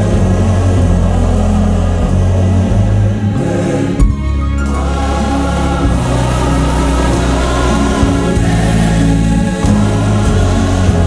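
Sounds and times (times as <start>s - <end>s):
accompaniment with deep bass: 0.0s - 11.0s
choir singing gospel: 0.0s - 11.0s.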